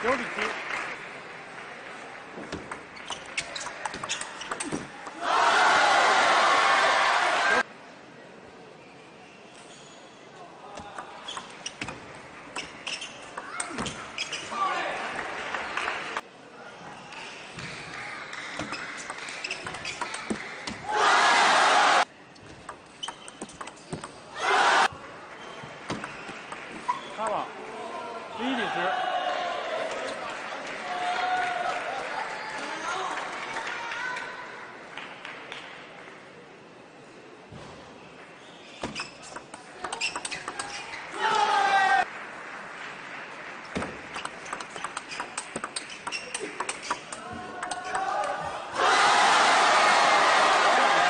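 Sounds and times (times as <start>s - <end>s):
people shouting and cheering: 41.1s - 42.1s, 47.2s - 51.0s
table tennis ball hits: 43.8s - 48.4s.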